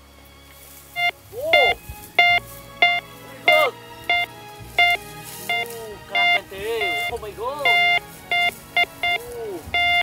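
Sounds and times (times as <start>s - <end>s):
rising and falling detector tones: 1.0s - 9.2s
metal detector beeping: 1.0s - 10.0s.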